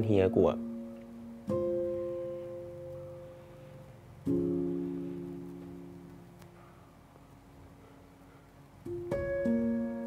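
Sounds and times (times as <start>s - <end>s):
soft held chord: 0.0s - 10.0s.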